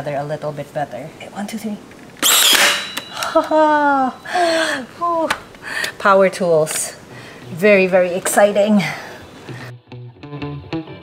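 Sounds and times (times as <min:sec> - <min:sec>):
nail gun firing: 0:02.2 - 0:03.3
woman laughing and squealing: 0:03.1 - 0:04.8.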